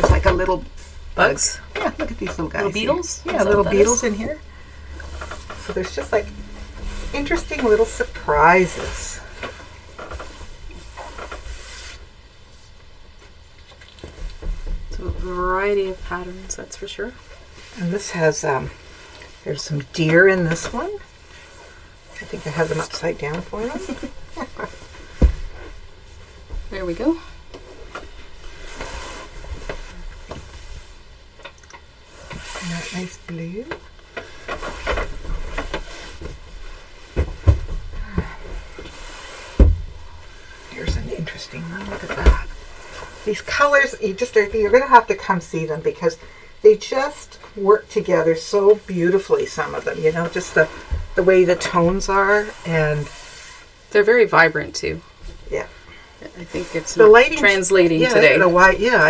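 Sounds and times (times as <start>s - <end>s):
cloth rustling: 0.0s - 16.6s, 17.2s - 45.3s, 55.2s - 59.0s
low hum: 0.0s - 46.7s.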